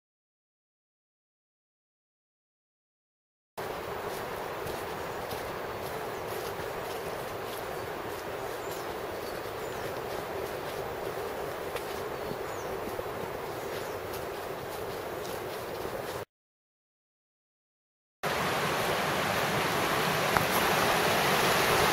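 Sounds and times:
faint bird chirps: 5.0s - 11.3s, 11.9s - 14.5s.

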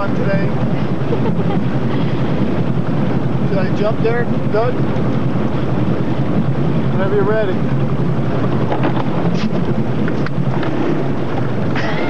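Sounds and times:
motorboat engine running: 0.0s - 12.0s
wind noise on microphone: 0.0s - 12.0s.

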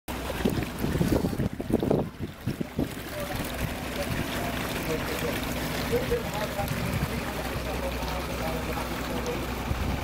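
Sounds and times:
wind rumbling on microphone: 0.1s - 5.1s, 5.7s - 7.7s, 9.6s - 10.0s.

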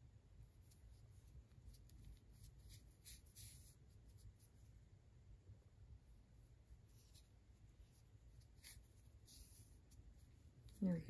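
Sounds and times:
low room hum: 0.0s - 11.0s
yarn rustling and scratching: 0.4s - 4.8s, 6.6s - 11.0s.

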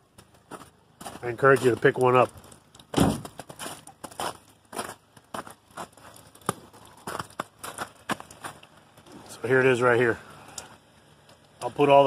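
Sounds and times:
footsteps crunching through snow: 0.4s - 2.3s, 3.1s - 8.7s.

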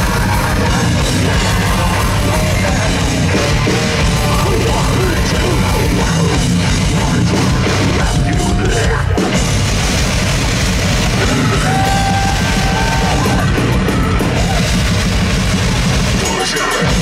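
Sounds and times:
heavy metal band playing: 0.0s - 17.0s.

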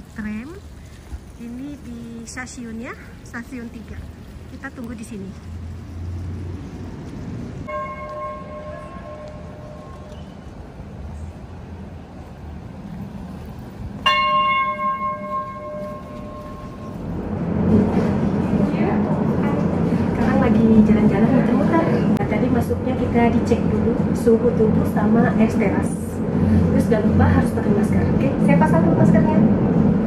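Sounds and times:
passenger noise: 0.0s - 30.0s
tram rumble: 0.0s - 30.0s
tram bell ringing: 7.6s - 11.2s, 14.0s - 29.5s.

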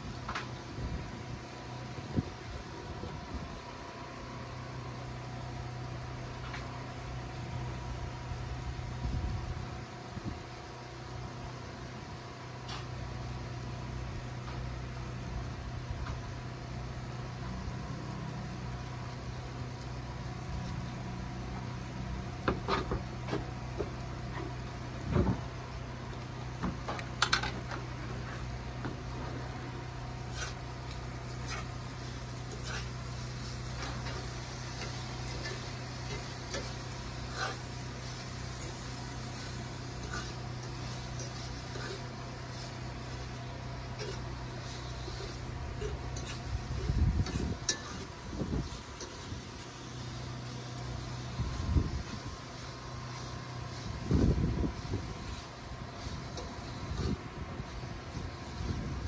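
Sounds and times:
camp stove burner hum: 0.0s - 59.0s.

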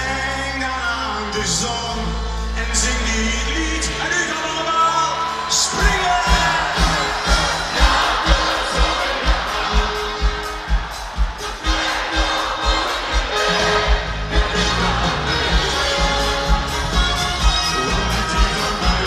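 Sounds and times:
crowd cheering: 0.0s - 19.0s
live band music: 0.0s - 19.0s.

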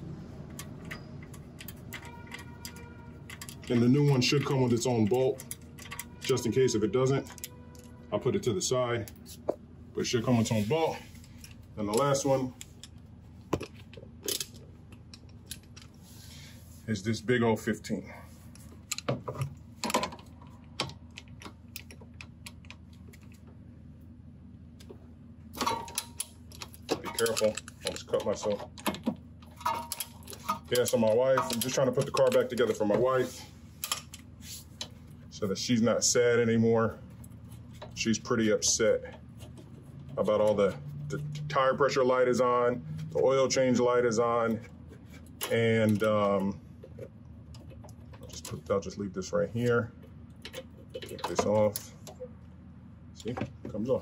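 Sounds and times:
small metal parts clicking: 0.5s - 6.5s, 25.6s - 32.8s.

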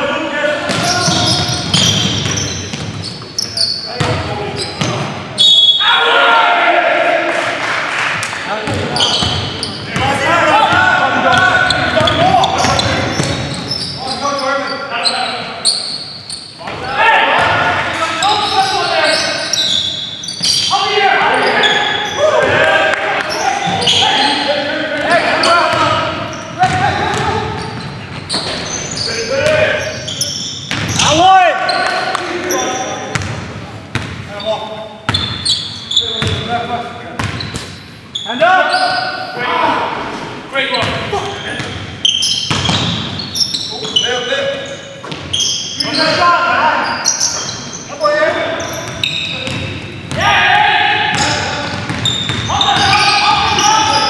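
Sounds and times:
players shouting: 5.6s - 15.4s, 16.6s - 27.8s, 50.1s - 54.0s.

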